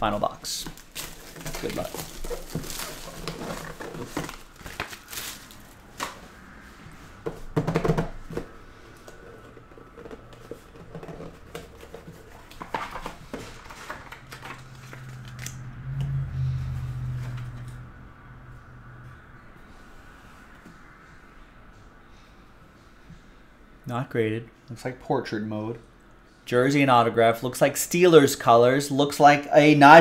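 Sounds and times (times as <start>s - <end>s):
low steady hum: 0.0s - 29.0s
cardboard box handling: 0.6s - 6.2s
plastic wrap tearing and crinkling: 0.6s - 6.2s, 12.3s - 15.6s.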